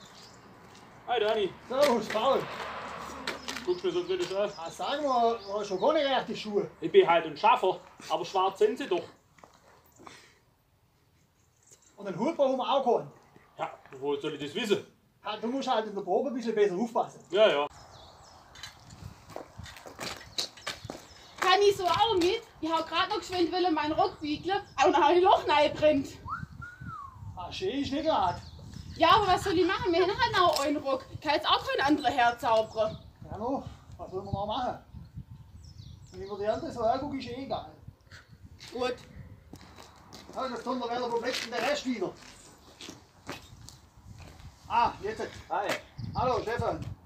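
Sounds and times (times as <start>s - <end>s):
faint footsteps on paving stones: 0.0s - 5.2s, 7.6s - 10.3s, 17.8s - 24.0s, 38.6s - 47.0s.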